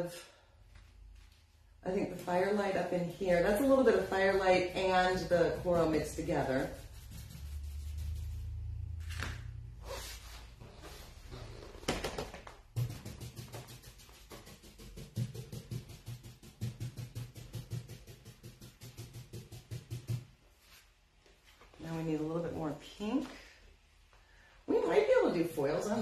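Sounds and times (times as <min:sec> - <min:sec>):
paint dabbing taps on panel: 0:12.7 - 0:20.3.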